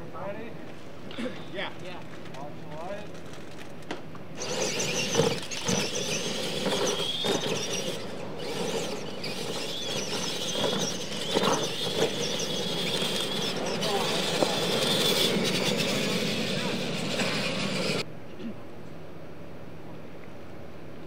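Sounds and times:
toy truck electric motors whining: 4.4s - 18.0s.

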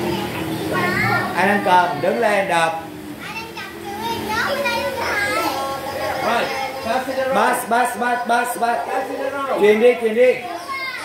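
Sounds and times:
young children talking: 0.0s - 11.0s.

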